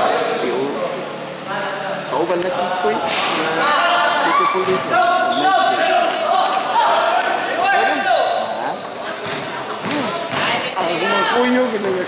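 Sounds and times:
people shouting: 3.6s - 8.4s
basketball bouncing on gym floor: 9.2s - 10.6s.

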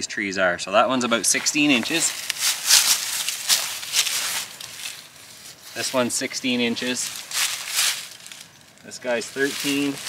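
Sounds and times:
footsteps crunching through dry leaves: 1.0s - 10.0s.

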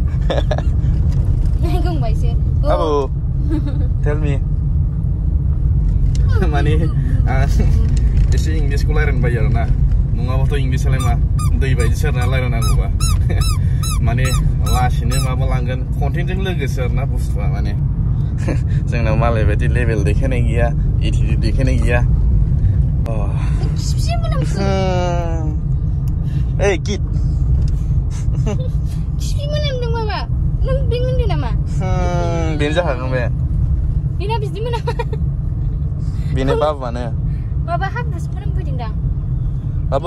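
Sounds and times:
car cabin road rumble: 0.0s - 40.0s
person making high wordless sounds: 24.1s - 25.6s.

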